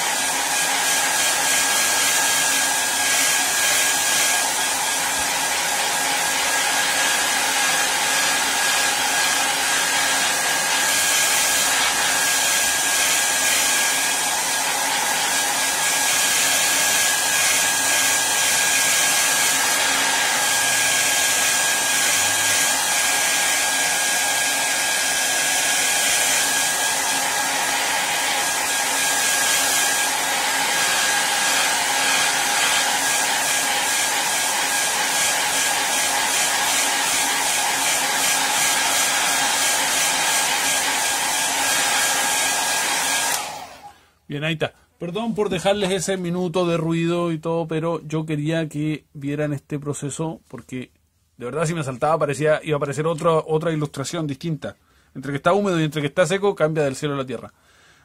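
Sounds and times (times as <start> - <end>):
hair dryer blowing: 0.0 - 44.0.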